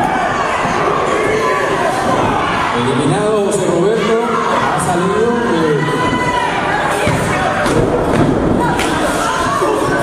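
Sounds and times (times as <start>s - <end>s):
crowd noise: 0.0s - 10.0s
wrestlers striking and landing on mat: 6.9s - 10.0s.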